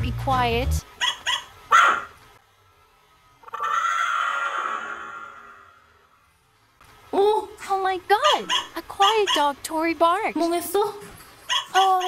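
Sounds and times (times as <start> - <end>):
toy dog barking: 1.0 - 2.1, 8.2 - 9.5, 11.5 - 12.0.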